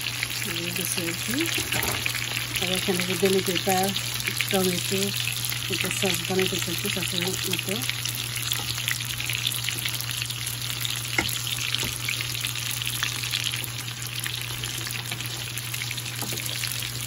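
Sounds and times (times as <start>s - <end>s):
meatballs sizzling in oil: 0.0s - 17.0s.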